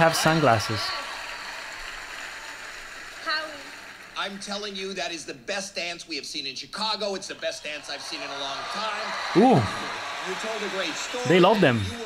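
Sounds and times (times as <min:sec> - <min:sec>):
audience applause: 0:00.0 - 0:04.7, 0:07.4 - 0:12.0.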